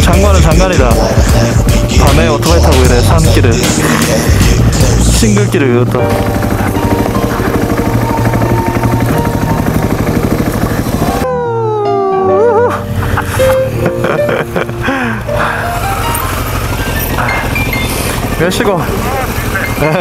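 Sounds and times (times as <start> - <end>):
song with beat and vocals: 0.0 - 5.5.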